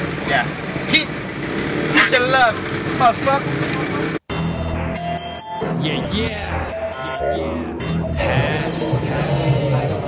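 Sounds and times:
road noise: 0.0 - 10.0.

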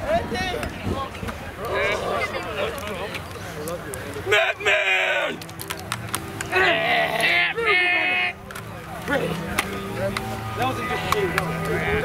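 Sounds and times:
overlapping voices: 1.5 - 12.0
gloves and sticks tapping: 5.4 - 6.5, 9.5 - 10.3.

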